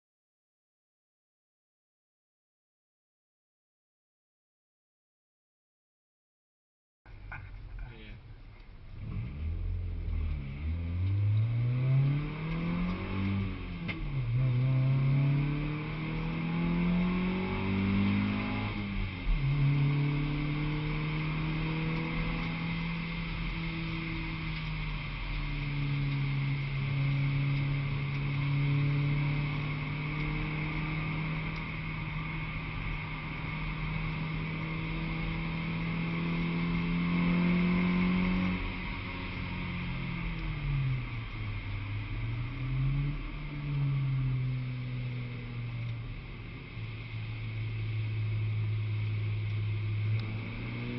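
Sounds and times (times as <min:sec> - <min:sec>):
car engine accelerating: 0:07.1 - 0:50.9.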